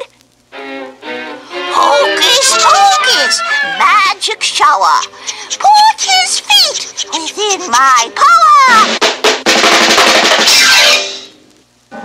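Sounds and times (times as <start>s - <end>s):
drum roll: 1.7s - 11.4s.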